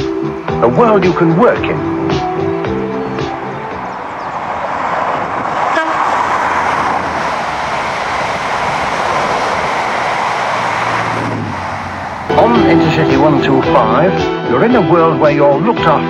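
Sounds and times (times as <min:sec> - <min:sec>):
train passing at speed: 0:01.3 - 0:14.1.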